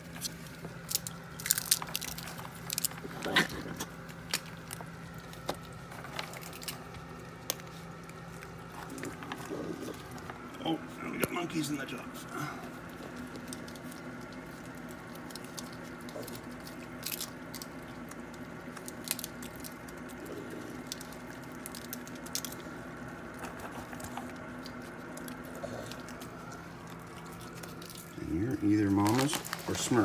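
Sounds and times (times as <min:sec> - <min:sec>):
raccoons crunching and chewing: 0:00.0 - 0:30.0
steady low hum: 0:00.0 - 0:30.0.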